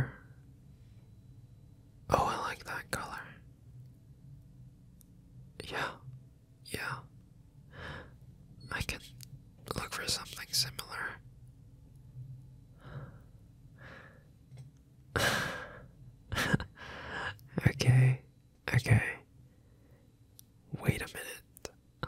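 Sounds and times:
man whispering: 0.0s - 0.3s, 2.1s - 3.5s, 5.6s - 7.1s, 8.7s - 11.2s, 17.2s - 19.3s, 20.7s - 21.8s
faint low hum: 0.0s - 22.0s.

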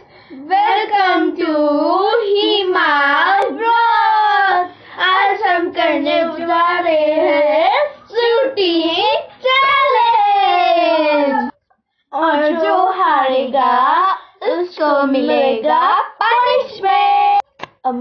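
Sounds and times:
children singing: 5.0s - 8.6s.

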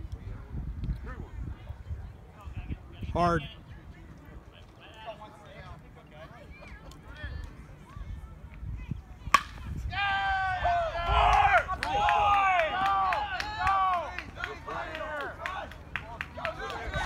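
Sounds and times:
bat hitting ball crack: 9.3s - 9.8s
spectators shouting and cheering: 9.8s - 17.0s.

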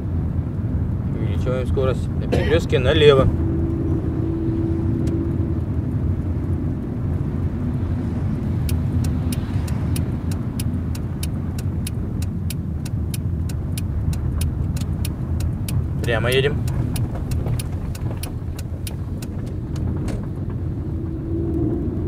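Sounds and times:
car engine and tyre rumble: 0.0s - 22.0s
turn signal ticking: 2.5s - 22.0s.

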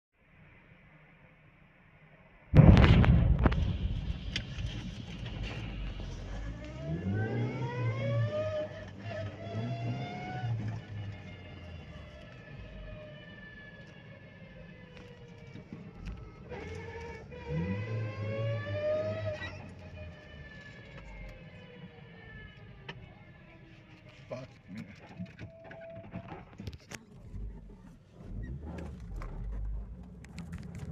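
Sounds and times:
loud explosion with rumble: 2.5s - 6.6s
car engine accelerating: 3.4s - 24.4s, 27.1s - 30.9s.

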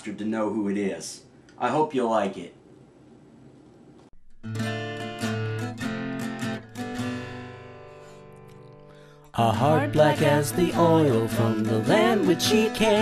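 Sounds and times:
acoustic guitar strumming chords: 4.2s - 13.0s.

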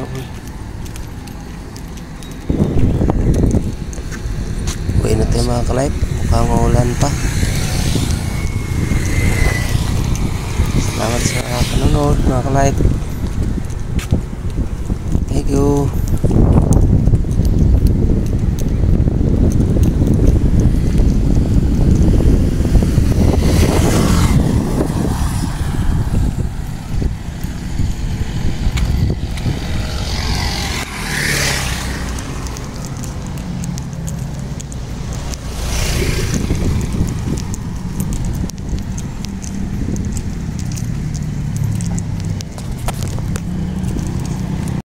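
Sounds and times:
road traffic passing: 0.0s - 44.8s
vehicle and wind rumble: 0.0s - 44.8s.

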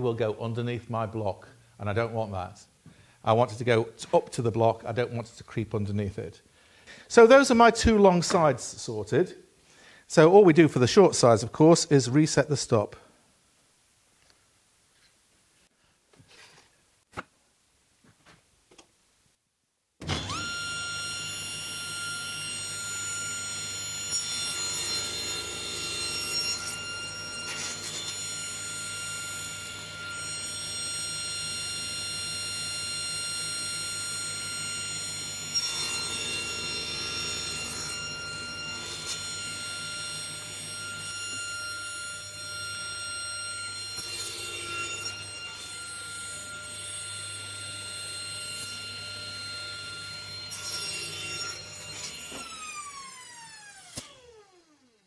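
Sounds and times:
table saw whining: 20.0s - 55.0s
saw blade cutting wood: 20.1s - 54.4s.

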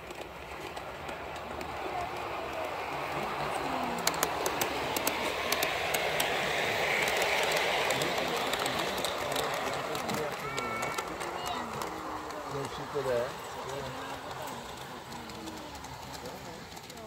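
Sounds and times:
model train wheels clicking: 0.0s - 17.0s
people talking: 1.3s - 17.0s.

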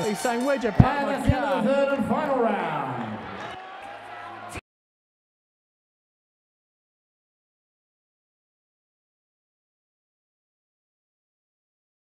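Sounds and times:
man's voice: 0.0s - 3.3s
crowd noise: 0.0s - 4.6s.

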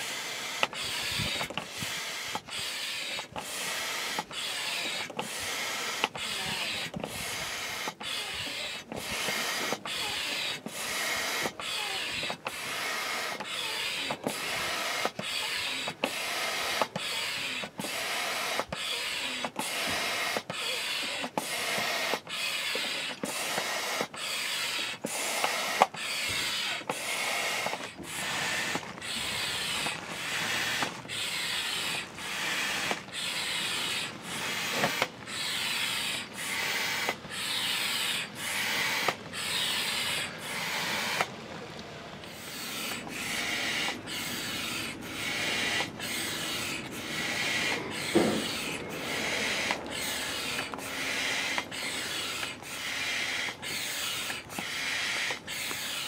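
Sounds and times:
hand air pump strokes: 0.0s - 56.0s.

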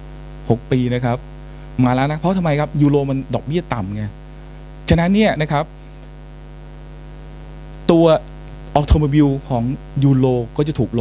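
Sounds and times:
sound system electrical hum: 0.0s - 11.0s
man speaking into microphone: 0.4s - 4.2s, 4.8s - 5.7s, 7.8s - 11.0s.

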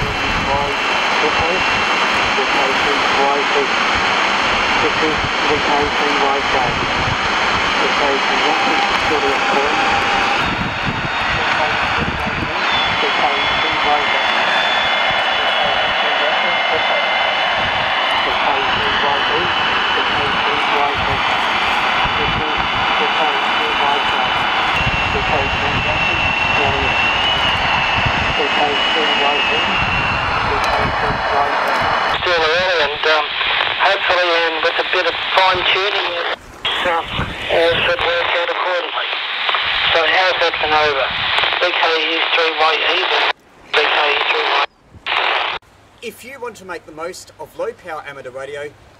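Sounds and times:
clear voice from transceiver: 0.0s - 1.7s, 2.3s - 3.7s, 4.8s - 6.9s, 7.8s - 10.5s, 11.3s - 14.7s, 15.3s - 17.1s, 18.2s - 21.2s, 22.1s - 24.4s, 25.1s - 27.0s, 28.4s - 29.8s, 30.4s - 48.5s
weak voice on radio: 0.0s - 1.7s, 2.4s - 3.7s, 4.8s - 6.9s, 7.8s - 10.4s, 11.3s - 14.6s, 15.3s - 17.1s, 18.2s - 21.3s, 22.1s - 24.4s, 25.1s - 27.0s, 28.3s - 29.8s, 30.4s - 47.0s
radio hiss and static: 0.0s - 48.7s.

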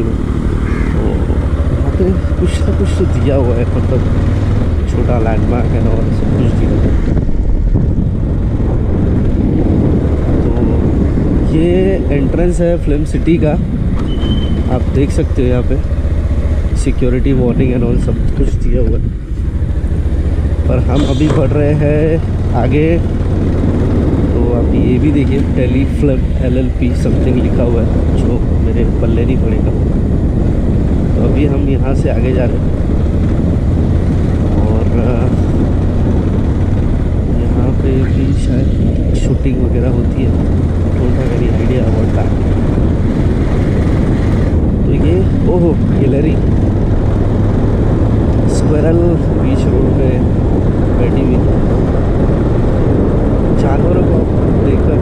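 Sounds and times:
motorcycle engine running: 0.0s - 55.0s
wind rumbling on microphone: 0.0s - 55.0s.

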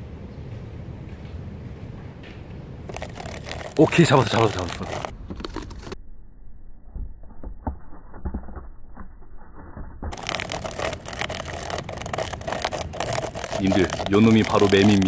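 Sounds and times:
crackling clicks: 2.9s - 6.0s, 9.7s - 15.0s
plastic cup scraping tree bark: 2.9s - 6.0s, 10.1s - 15.0s.

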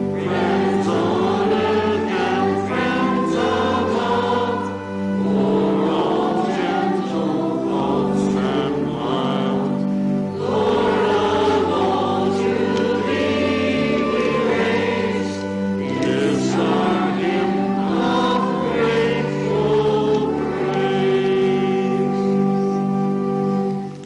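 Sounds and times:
organ holding chords: 0.0s - 24.0s
people singing in a church: 0.0s - 24.0s.

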